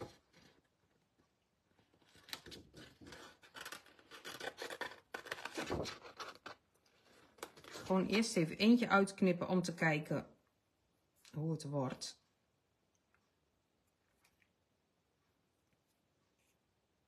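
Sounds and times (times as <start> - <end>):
paper crackling and rubbing: 1.8 - 8.1.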